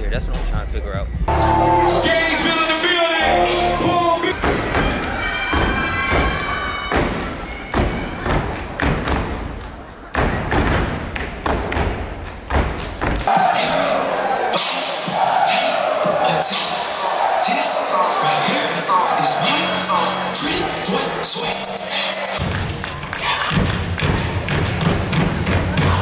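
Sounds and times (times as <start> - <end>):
bass-heavy music: 0.0 - 4.6, 16.0 - 22.8
crowd voices in a hall: 1.2 - 26.0
stomps and claps: 4.3 - 13.5, 22.4 - 26.0.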